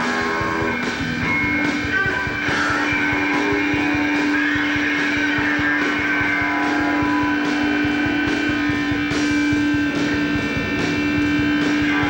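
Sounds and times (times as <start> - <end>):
drums: 0.0 - 12.0
live rock band playing: 0.0 - 12.0.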